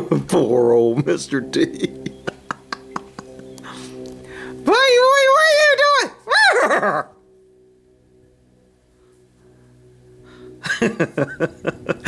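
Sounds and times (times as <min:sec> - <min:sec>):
faint steady low tones: 0:00.0 - 0:05.8, 0:07.1 - 0:12.0.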